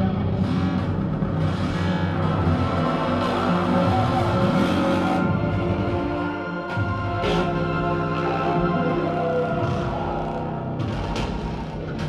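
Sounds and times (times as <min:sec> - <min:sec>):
experimental music sustained tones: 0:00.0 - 0:12.0.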